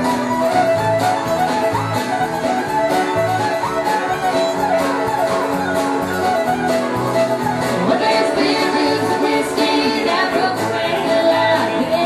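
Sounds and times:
bass: 0:00.0 - 0:12.0
fiddle: 0:00.0 - 0:12.0.

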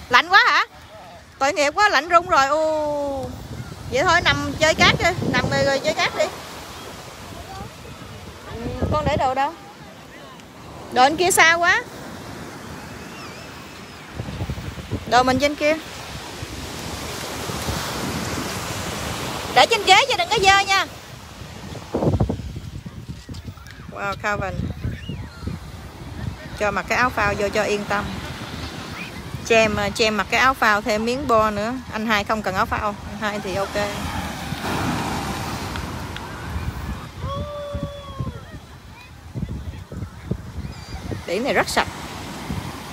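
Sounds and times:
ocean surf washing onto beach: 0:00.0 - 0:42.9
wind buffeting microphone: 0:00.0 - 0:42.9.

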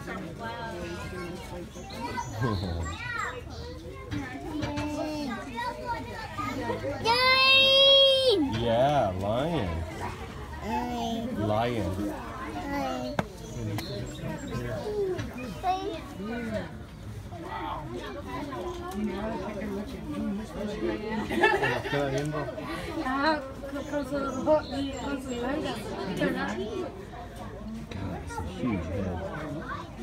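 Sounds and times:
people chattering: 0:00.0 - 0:30.0
people talking and calling out: 0:00.0 - 0:30.0
children's excited voices: 0:01.9 - 0:08.5.

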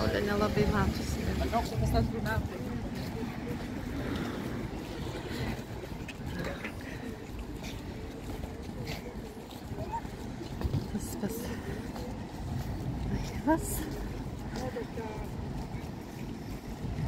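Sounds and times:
chatter of passers-by: 0:00.0 - 0:17.0
wind buffeting microphone: 0:00.0 - 0:17.0.

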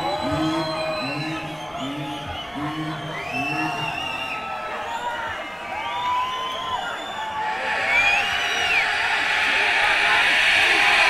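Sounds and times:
whoops: 0:02.1 - 0:11.0.

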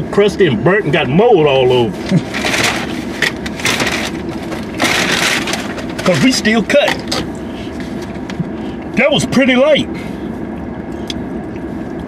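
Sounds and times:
car engine hum inside cabin: 0:00.0 - 0:12.0.

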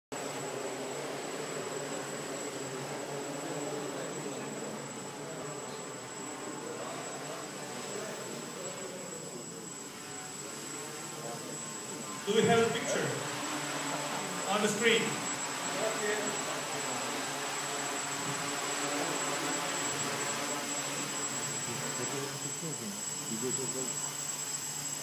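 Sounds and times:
drone propellers buzzing: 0:00.2 - 0:25.0.

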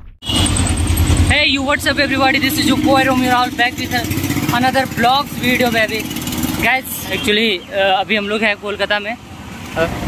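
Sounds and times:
street traffic: 0:00.1 - 0:10.0.

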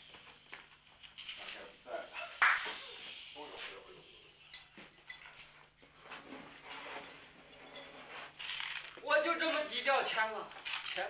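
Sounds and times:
coins jingling: 0:00.4 - 0:01.7, 0:08.4 - 0:11.0.

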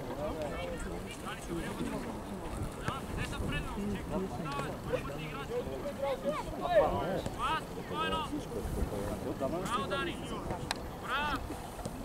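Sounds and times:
wind rumbling on microphone: 0:01.6 - 0:05.0, 0:08.4 - 0:09.4.

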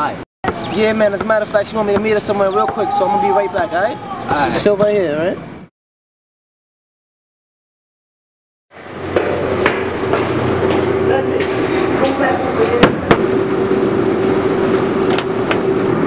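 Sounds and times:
steady hum: 0:08.8 - 0:16.0.

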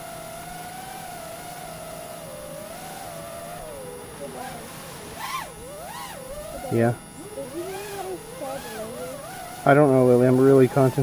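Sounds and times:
girl speaking at a distance: 0:04.2 - 0:04.8, 0:06.5 - 0:09.2
man's voice: 0:06.7 - 0:07.0.

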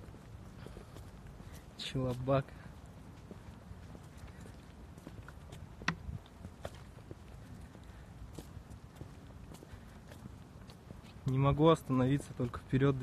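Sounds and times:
faint outdoor rumble: 0:00.0 - 0:13.0.

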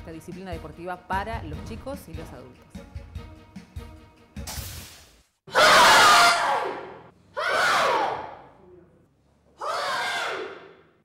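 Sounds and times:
group shouting together: 0:05.5 - 0:08.5, 0:09.6 - 0:10.9.

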